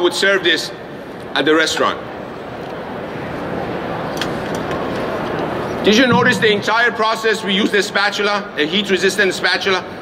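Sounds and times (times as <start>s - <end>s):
ventilation noise: 0.0s - 10.0s
man speaking: 5.8s - 9.8s.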